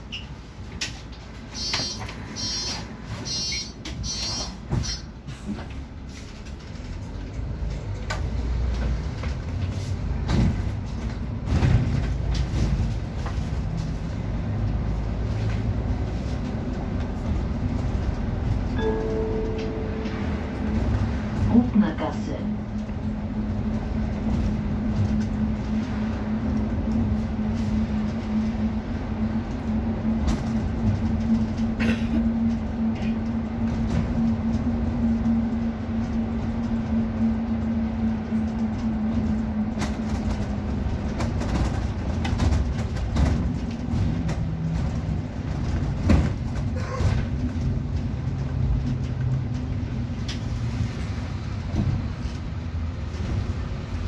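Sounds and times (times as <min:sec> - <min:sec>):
bus engine and drivetrain noise: 0:00.0 - 0:54.0.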